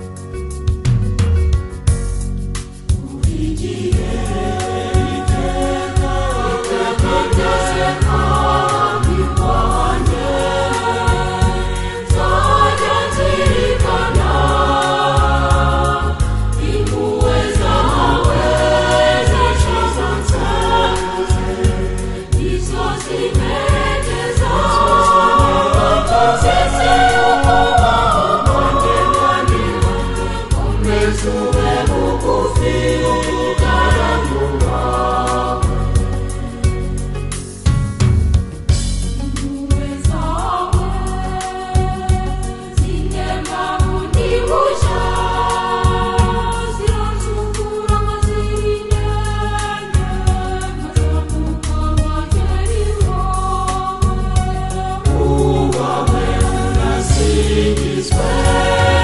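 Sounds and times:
heavy pulsing low accompaniment: 0:00.0 - 0:59.0
choir singing gospel song: 0:02.8 - 0:37.7, 0:38.7 - 0:59.0.

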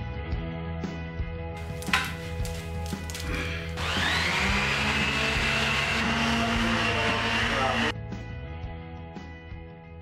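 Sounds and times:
background music: 0:00.0 - 0:10.0
electric power tool motor whining: 0:02.5 - 0:07.9.

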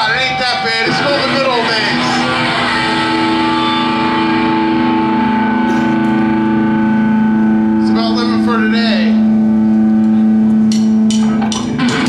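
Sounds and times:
electric guitar feedback drone: 0:00.0 - 0:12.0.

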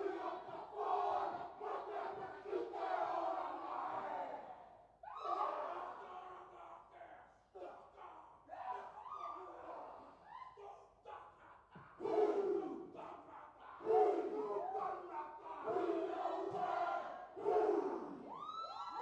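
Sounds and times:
men chanting shouts in unison: 0:07.6 - 0:18.3.

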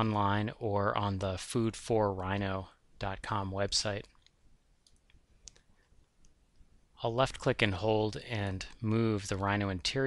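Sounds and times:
computer mouse clicks: 0:04.0 - 0:06.7.

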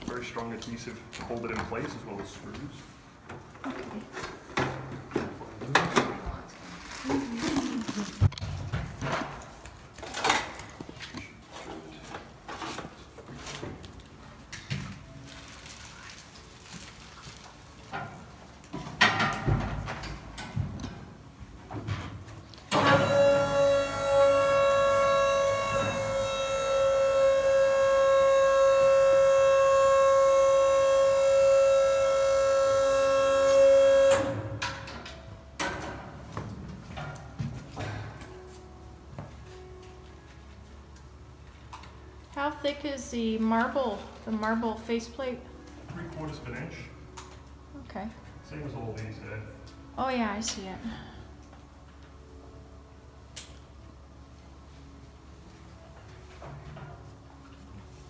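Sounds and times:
electric lift motor whine: 0:22.7 - 0:34.9.

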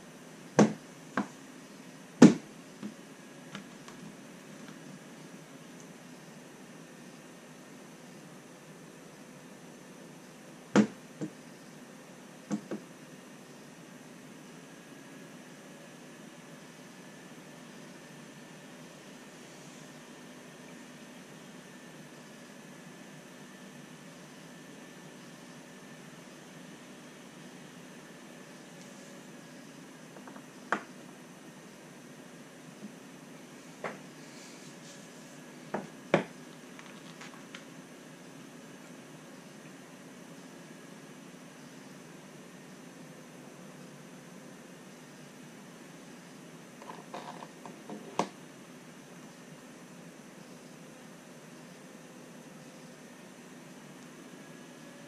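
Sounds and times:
room noise hiss: 0:00.0 - 0:55.0.

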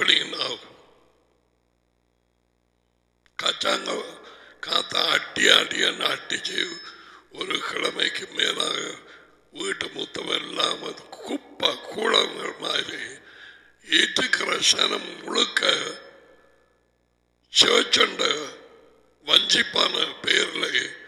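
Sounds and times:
man talking into headset microphone: 0:00.0 - 0:00.7, 0:03.4 - 0:16.0, 0:17.6 - 0:18.6, 0:19.2 - 0:21.0.

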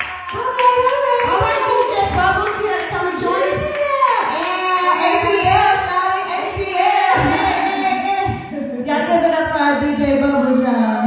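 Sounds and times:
women singing into microphones: 0:00.0 - 0:10.6.

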